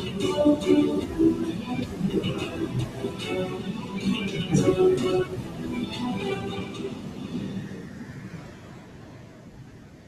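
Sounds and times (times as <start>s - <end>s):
low noisy video soundtrack: 0.0s - 10.0s.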